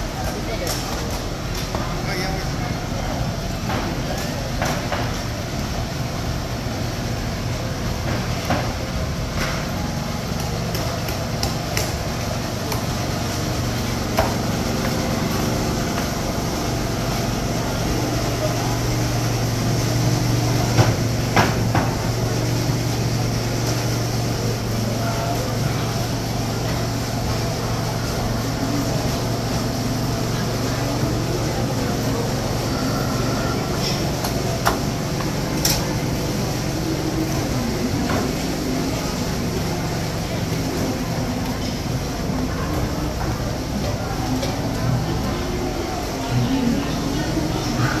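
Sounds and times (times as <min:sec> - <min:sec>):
voices of vendors and shoppers: 0:00.0 - 0:48.0.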